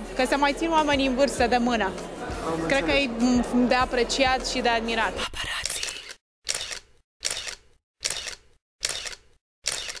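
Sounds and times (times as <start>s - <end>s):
camera shutter clicks: 5.6s - 10.0s.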